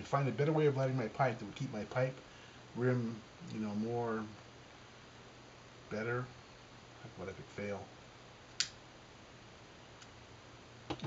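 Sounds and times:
lighter sparking click: 8.6s - 8.8s.

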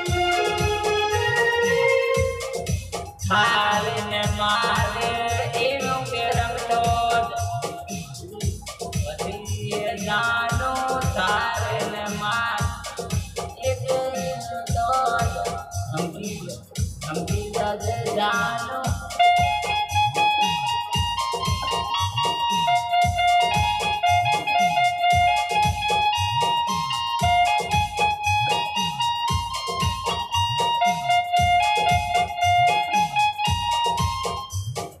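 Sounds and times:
drum machine rhythm: 0.0s - 35.0s
electronic keyboard melody: 0.0s - 35.0s.

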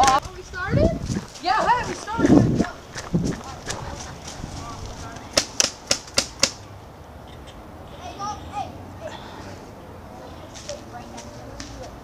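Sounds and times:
voices calling out: 0.0s - 12.0s
paintball marker firing: 5.3s - 6.6s.

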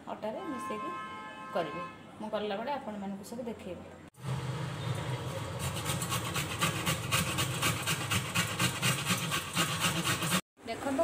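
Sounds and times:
carrot being grated: 5.5s - 10.4s.

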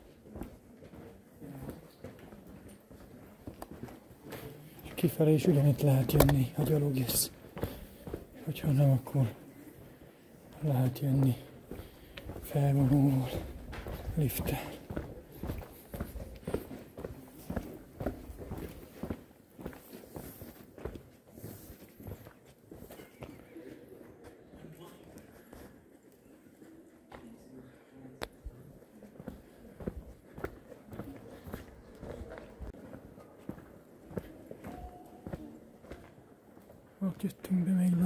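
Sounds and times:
footsteps on pavement: 0.0s - 23.5s, 27.1s - 38.0s
faint voices talking: 0.0s - 38.0s.

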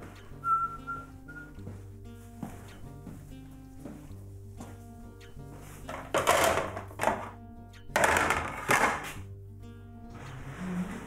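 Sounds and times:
background music: 0.0s - 11.0s
high whistle: 0.4s - 1.6s.

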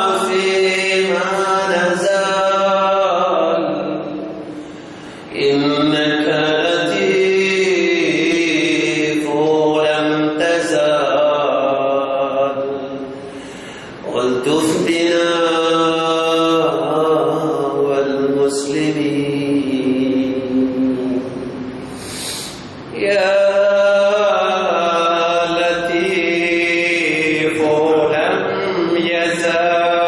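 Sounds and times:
man chanting in long held notes: 0.0s - 4.6s, 5.3s - 13.4s, 14.0s - 21.7s, 22.9s - 30.0s.

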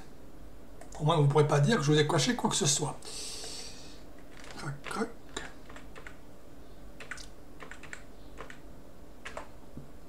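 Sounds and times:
keyboard typing: 4.3s - 6.2s, 7.0s - 8.6s, 9.2s - 9.5s.

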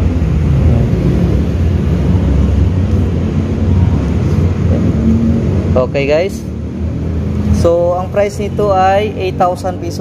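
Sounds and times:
deep rumble: 0.0s - 5.9s.

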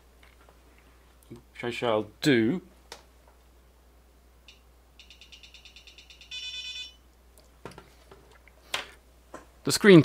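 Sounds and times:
electronic beeps: 4.5s - 7.0s.

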